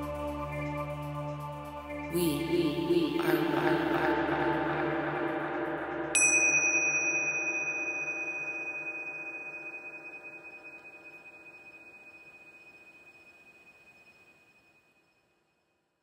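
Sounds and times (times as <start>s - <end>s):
low drone: 0.0s - 13.7s
high bell-like chime: 6.1s - 15.3s.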